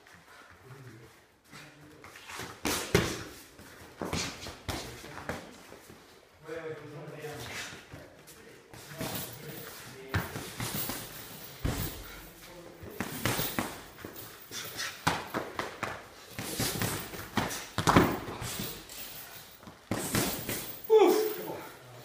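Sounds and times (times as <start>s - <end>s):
feet shuffling on mats: 0.0s - 21.8s
gloves and pads striking: 15.0s - 18.6s.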